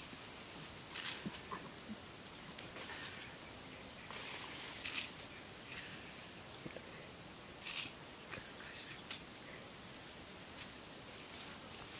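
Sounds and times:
insect chorus trilling: 0.0s - 11.9s.

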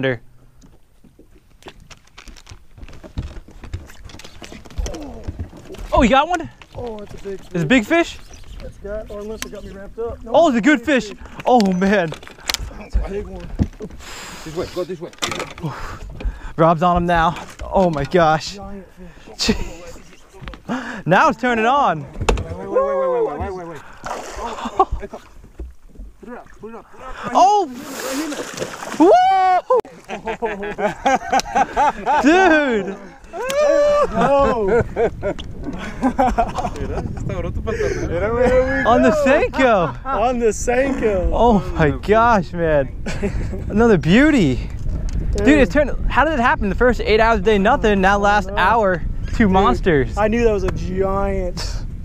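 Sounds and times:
dull low thumps: 15.8s - 17.8s
dull thump: 22.0s - 22.6s
person exclaiming excitedly: 22.6s - 23.5s, 29.0s - 29.8s, 32.2s - 34.6s.

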